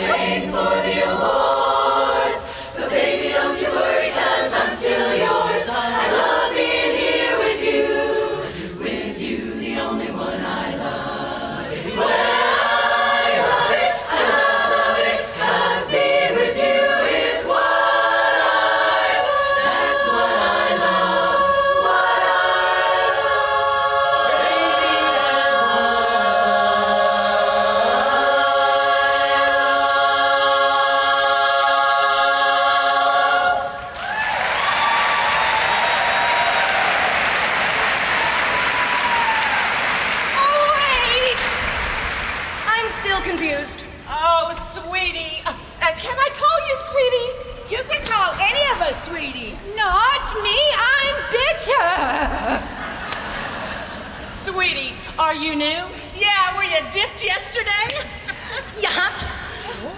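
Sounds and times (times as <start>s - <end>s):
women's chorus singing in harmony: 0.0s - 59.9s
audience applause: 34.0s - 43.1s.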